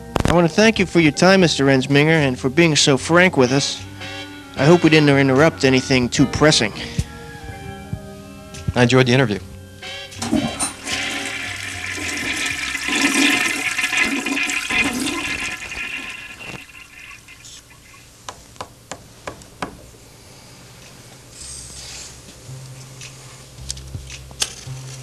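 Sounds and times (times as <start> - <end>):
toilet flushing: 10.2 - 18.1.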